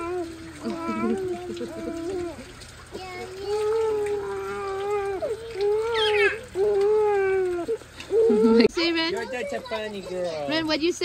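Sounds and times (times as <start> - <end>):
drinking fountain water running: 0.0 - 11.0.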